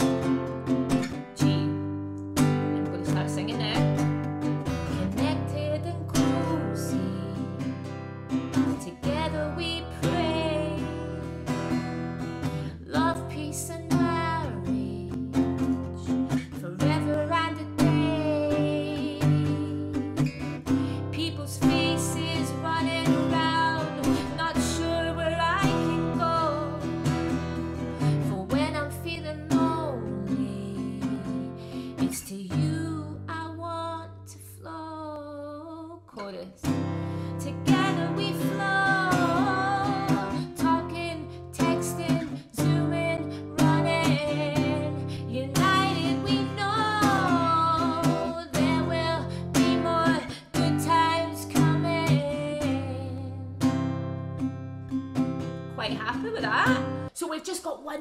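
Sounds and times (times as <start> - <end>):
strummed acoustic guitar: 0.0 - 34.1, 36.6 - 57.2
woman singing: 0.0 - 53.9, 55.8 - 58.0.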